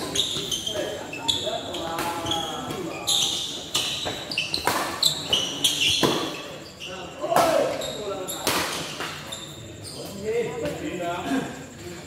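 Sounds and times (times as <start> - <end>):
shoes squeaking on court: 0.0 - 10.9
voices: 0.0 - 12.0
rackets hitting shuttlecock: 2.0 - 6.4, 8.4 - 9.3.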